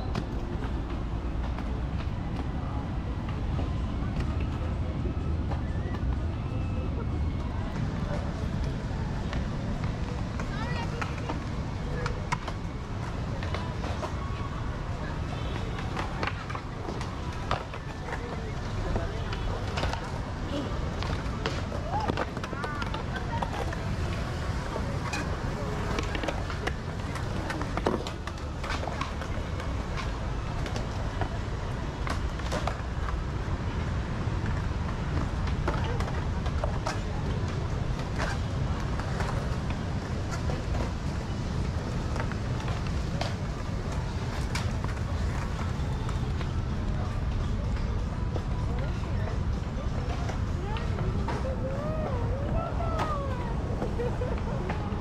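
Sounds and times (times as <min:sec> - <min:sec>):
skateboards rolling on concrete: 0:00.0 - 0:55.0
indistinct voices: 0:42.5 - 0:55.0.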